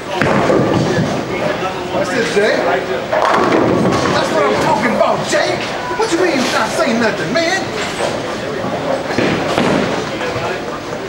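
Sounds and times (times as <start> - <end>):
bowling ball rolling rumble: 0.0 - 5.8, 7.7 - 11.0
people talking: 0.0 - 11.0.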